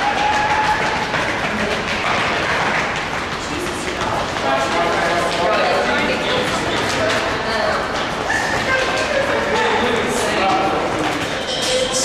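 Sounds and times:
quick footfalls on rubber floor: 0.0 - 11.5
people talking at once: 3.4 - 12.0.

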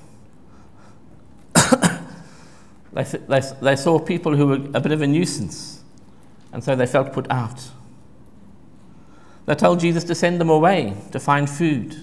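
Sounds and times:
man coughing: 1.5 - 2.4.

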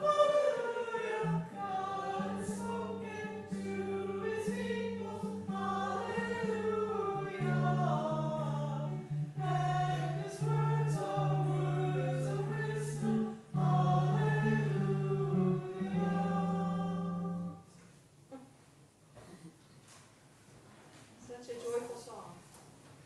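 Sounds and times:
choir singing a hymn: 0.0 - 17.6
held low accompanying notes: 1.1 - 17.6.

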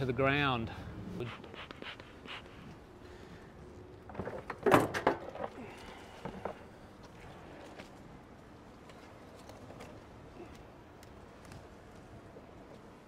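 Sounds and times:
sharp knocks and clatters: 4.1 - 5.6.

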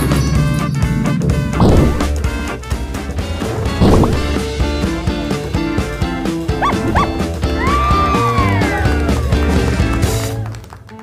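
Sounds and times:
yelping calls: 6.5 - 7.3.

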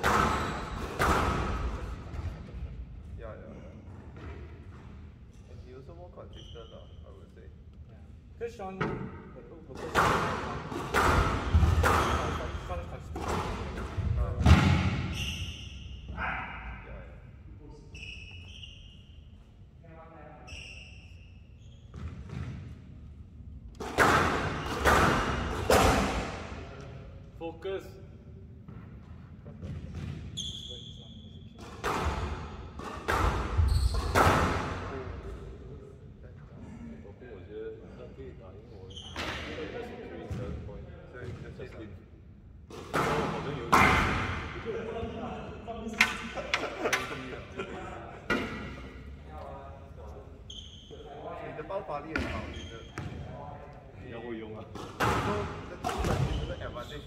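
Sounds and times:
men talking: 1.4 - 4.0, 5.4 - 14.9, 25.6 - 28.4, 34.6 - 42.1, 43.0 - 57.0
short high squeak: 15.1 - 16.1, 17.9 - 19.4, 20.4 - 21.9.

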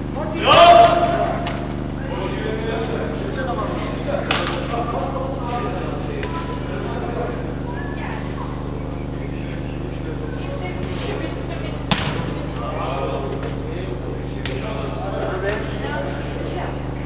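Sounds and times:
steady electrical hum: 0.0 - 17.0
faint echoing shouts of players: 0.1 - 2.3
football being kicked: 11.9 - 12.3.

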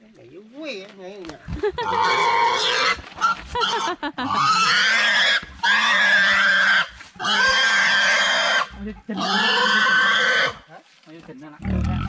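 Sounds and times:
pig squealing loudly: 1.8 - 10.6.

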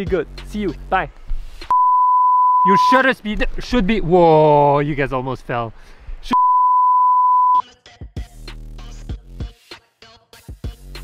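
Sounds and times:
background music with drum beat: 0.0 - 1.7, 7.8 - 11.0
test tone beep: 1.7 - 3.0, 6.3 - 7.6.

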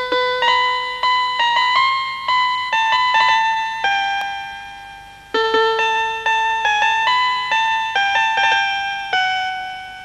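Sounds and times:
electronic keyboard jingle: 0.0 - 10.0.

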